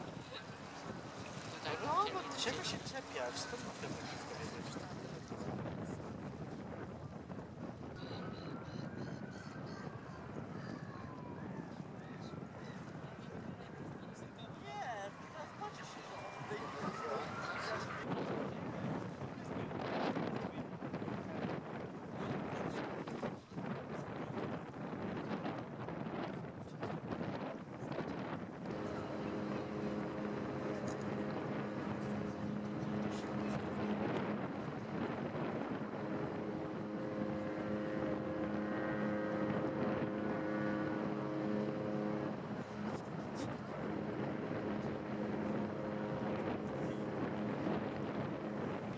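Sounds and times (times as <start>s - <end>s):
ship machinery humming: 0.0s - 9.0s, 12.3s - 18.0s, 28.6s - 48.9s
wind buffeting microphone: 0.0s - 48.9s.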